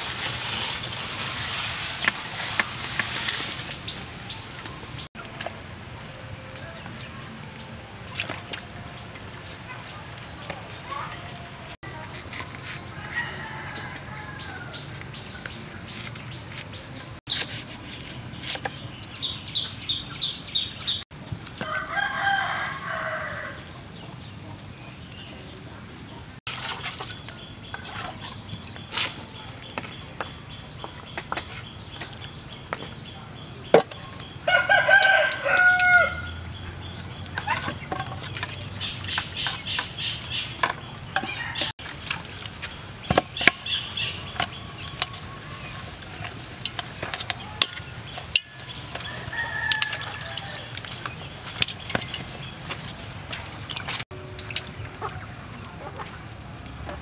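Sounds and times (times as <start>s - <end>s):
rooster crowing: 13.0s - 14.8s, 21.6s - 23.6s, 34.5s - 36.4s, 49.1s - 50.7s.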